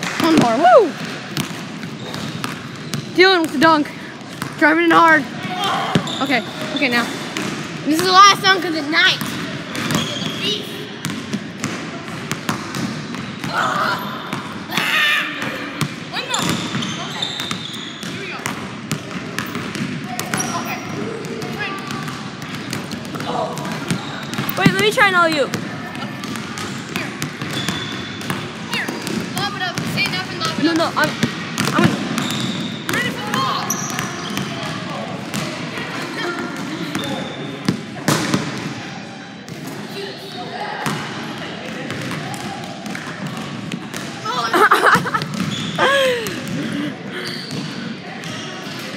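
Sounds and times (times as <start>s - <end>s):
basketballs bouncing on wood floor: 0.0s - 38.8s, 40.8s - 48.5s
voices in gym: 0.0s - 48.9s.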